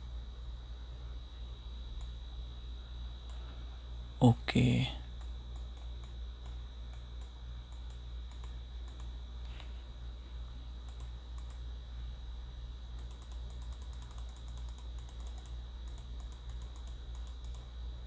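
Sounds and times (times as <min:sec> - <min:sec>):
faint high whine: 0:00.0 - 0:18.0
low electrical hum: 0:00.0 - 0:18.0
computer keyboard clicking: 0:05.2 - 0:09.1, 0:10.8 - 0:11.6, 0:13.0 - 0:17.7.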